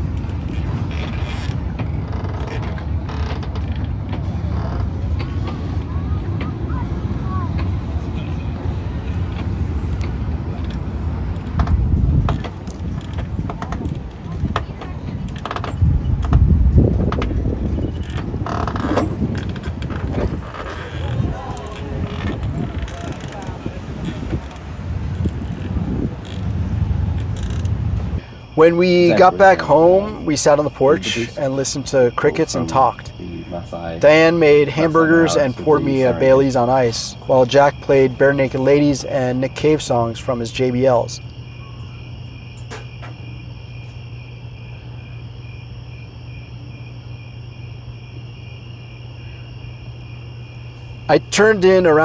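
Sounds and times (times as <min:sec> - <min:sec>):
cricket chirping in steady pulse: 0:00.0 - 0:52.0
crickets trilling high: 0:00.0 - 0:52.0
low street rumble: 0:00.0 - 0:52.0
steady low hum: 0:00.0 - 0:52.0
faint indistinct voices: 0:02.4 - 0:10.0, 0:13.1 - 0:15.8, 0:20.2 - 0:26.0.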